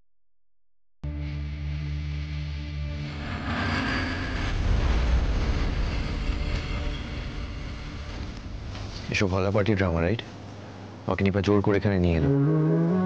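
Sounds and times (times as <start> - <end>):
deep dramatic sound effect: 2.2 - 8.7.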